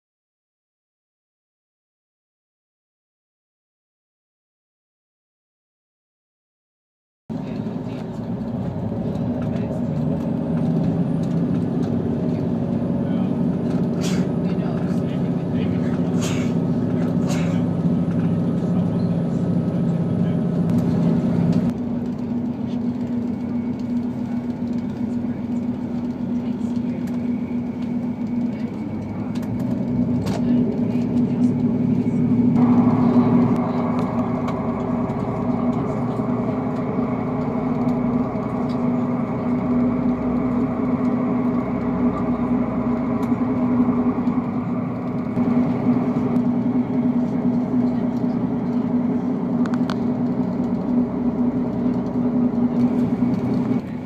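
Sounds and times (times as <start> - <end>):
low engine hum: 7.3 - 54.0
train cabin running drone: 7.3 - 54.0.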